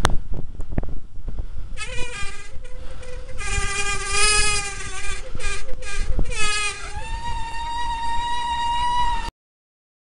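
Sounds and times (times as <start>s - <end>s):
wind rumble: 0.0s - 9.3s
bicycle brakes squealing: 1.8s - 9.3s.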